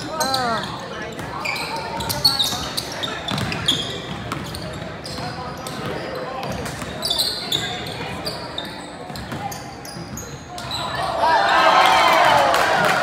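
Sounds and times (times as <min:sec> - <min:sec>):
sneakers squeaking: 0:00.0 - 0:11.2
spectators' voices: 0:00.0 - 0:13.0.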